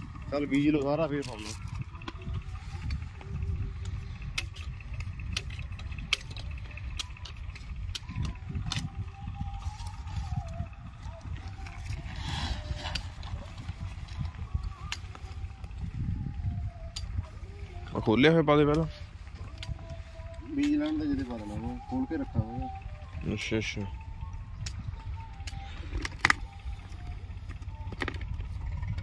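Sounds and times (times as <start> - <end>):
wind rumbling on microphone: 0.0 - 29.0.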